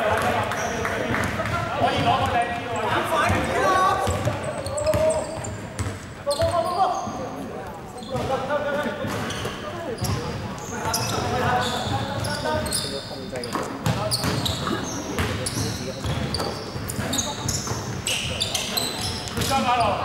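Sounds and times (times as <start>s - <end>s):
sneakers squeaking: 0.2s - 20.0s
basketball bouncing on wooden court: 3.3s - 6.6s, 8.2s - 8.4s, 13.8s - 18.0s.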